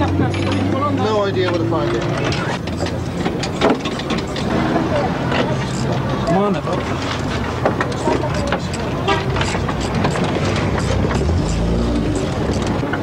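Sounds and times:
hand tools clinking on metal: 0.0 - 4.6
background voices: 0.0 - 13.0
vehicle engine revving: 8.9 - 13.0.

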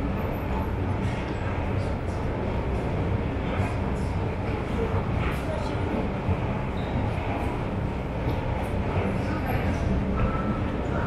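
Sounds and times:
train rumbling in station: 0.0 - 11.0.

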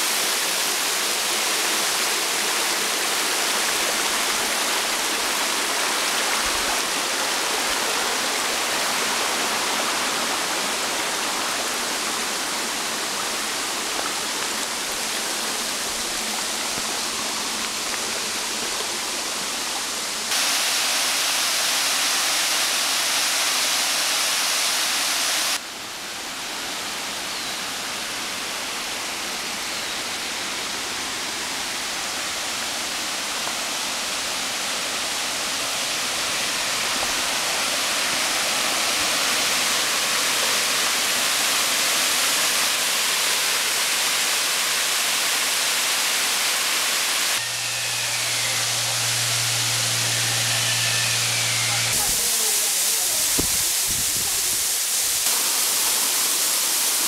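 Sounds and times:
waterfall and creek rushing: 0.0 - 57.0
low steady hum: 47.4 - 52.1.

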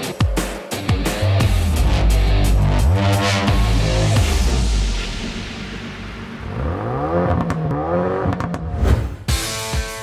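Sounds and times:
music: 0.0 - 10.0
car engine revving: 1.3 - 8.8.

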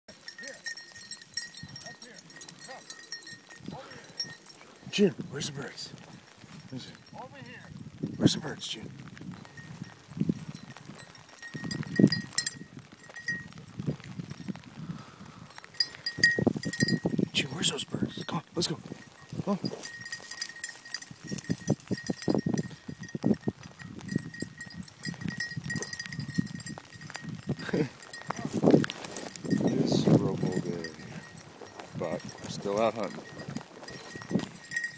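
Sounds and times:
footsteps through dry grass: 0.1 - 8.2, 8.8 - 34.9.

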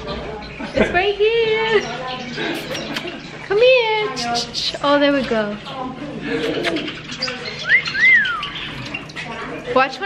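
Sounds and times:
birds cooing: 0.4 - 10.0
bird whistling rising notes: 7.6 - 8.7.

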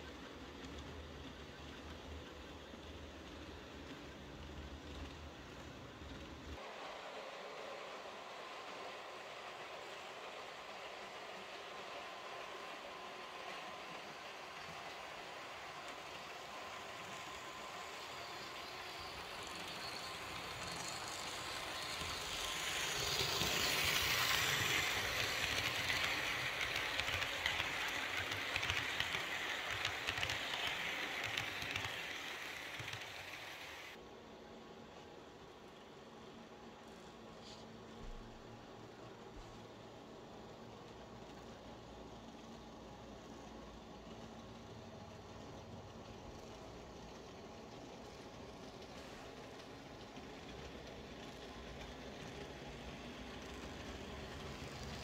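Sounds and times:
model train running on rails: 0.0 - 55.0.

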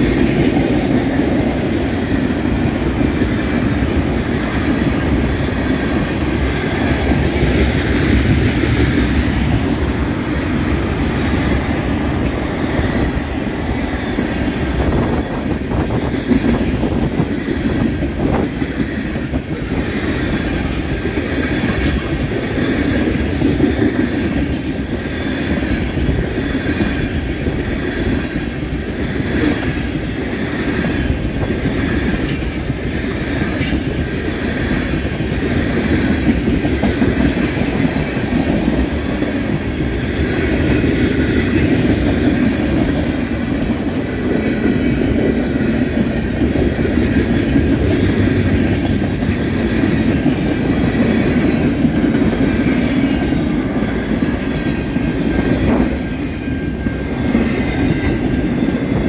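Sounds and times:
clacking over rail joints: 0.0 - 58.7
train wheels rumbling on rail: 0.0 - 59.0.

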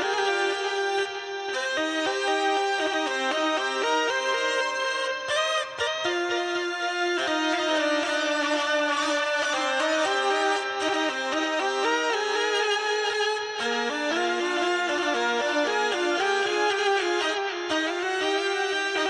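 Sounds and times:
hurdy-gurdy melody: 0.0 - 19.0.

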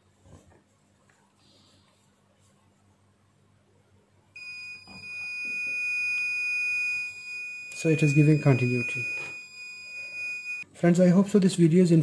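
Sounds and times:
high-pitched continuity beep: 4.4 - 10.6.

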